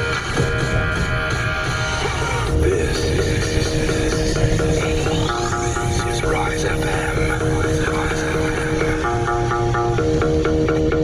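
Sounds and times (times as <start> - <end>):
car radio music with guitar: 0.0 - 11.0
car cabin low rumble: 2.4 - 10.7.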